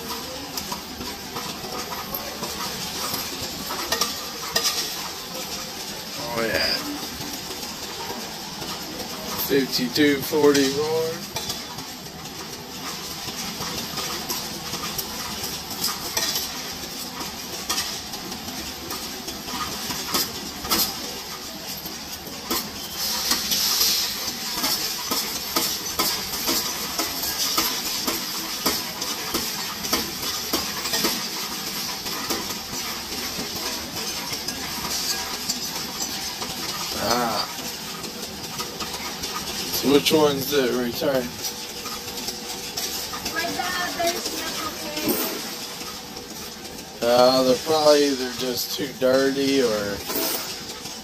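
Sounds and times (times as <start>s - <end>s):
coins clinking in counting machine: 13.2s - 45.9s, 47.0s - 51.0s.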